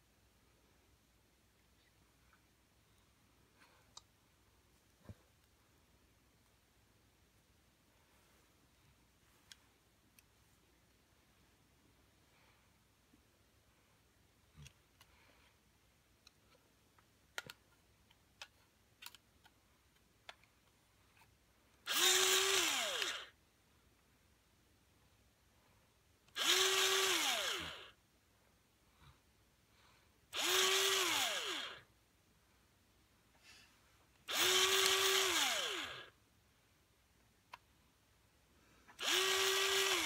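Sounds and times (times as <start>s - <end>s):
electric pencil sharpener whining: 21.9s - 23.4s, 26.3s - 28.0s, 30.4s - 31.8s, 34.2s - 36.2s, 39.0s - 40.0s.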